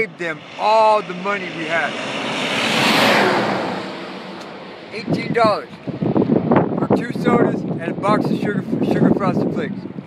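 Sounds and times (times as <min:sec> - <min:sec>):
vehicle passing on road: 0:00.0 - 0:06.8.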